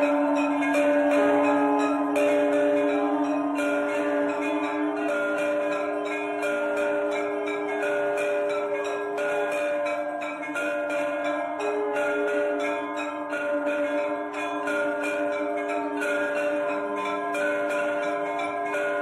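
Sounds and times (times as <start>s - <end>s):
temple bells ringing: 0.0s - 19.0s.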